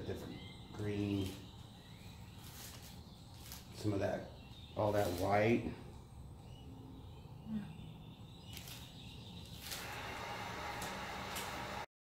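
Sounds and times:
heat gun blowing: 0:09.6 - 0:11.9.

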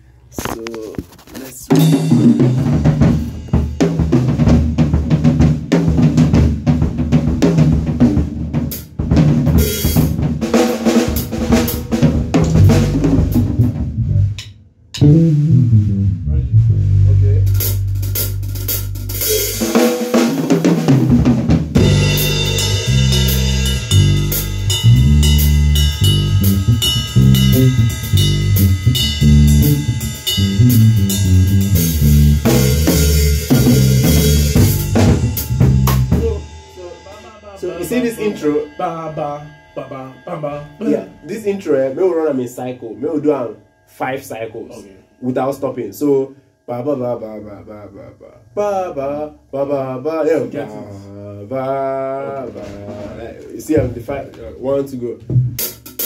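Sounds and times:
drum kit: 0:00.4 - 0:41.8, 0:52.0 - 0:56.0
electric bass guitar: 0:11.3 - 0:19.9, 0:20.8 - 0:36.5
higher sustained tones: 0:21.8 - 0:52.2.

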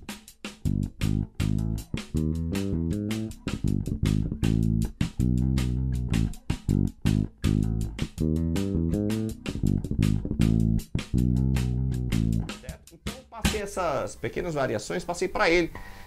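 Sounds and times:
electric bass plucked notes: 0:00.0 - 0:13.6.

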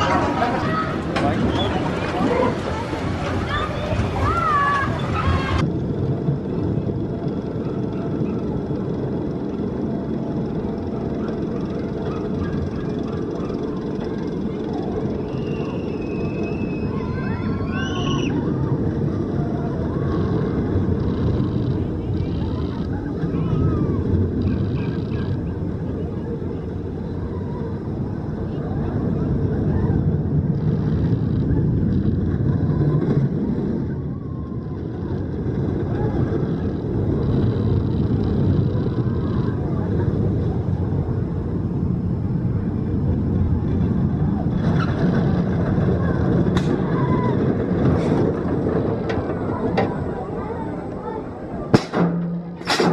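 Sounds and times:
riders' voices: 0:00.0 - 0:05.6
roller coaster rumbling on track: 0:00.0 - 0:52.9.

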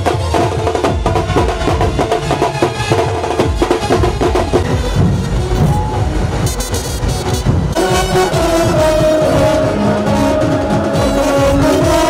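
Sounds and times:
brass horn notes: 0:03.9 - 0:12.0.

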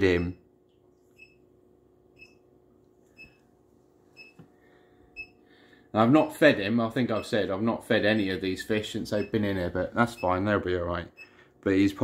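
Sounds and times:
aquarium equipment hum: 0:00.0 - 0:12.0.

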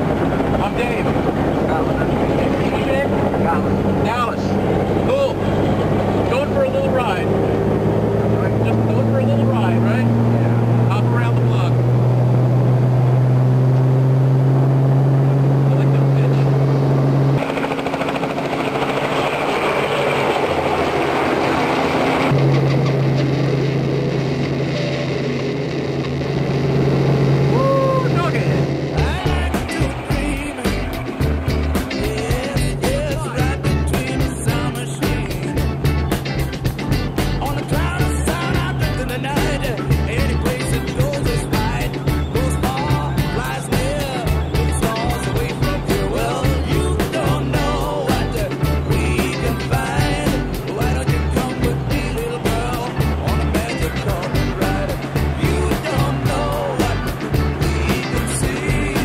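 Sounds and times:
helicopter engine and rotor: 0:00.0 - 0:37.2
music with steady beat: 0:29.0 - 0:59.0.

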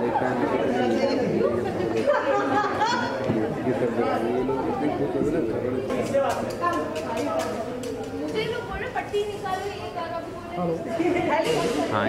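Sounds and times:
overlapping chatter of people: 0:00.0 - 0:12.0.

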